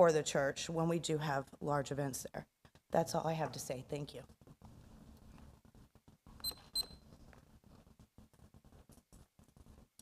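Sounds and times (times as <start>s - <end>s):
faint room noise: 0.0s - 10.0s.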